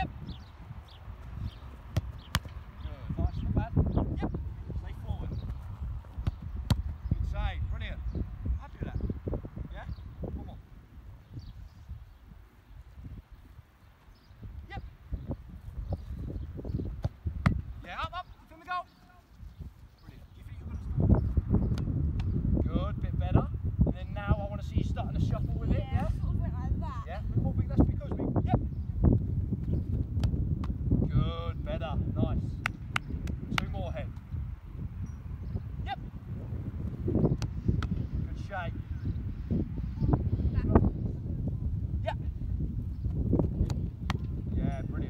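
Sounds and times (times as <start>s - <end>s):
wind rumbling on microphone: 0.0s - 18.4s, 19.3s - 45.0s
football being kicked: 1.8s - 2.6s, 5.4s - 7.0s, 16.8s - 17.6s, 29.6s - 30.8s, 43.1s - 44.3s
football struck: 1.9s - 2.6s, 6.2s - 7.0s
ball caught by gloves: 2.0s - 2.6s.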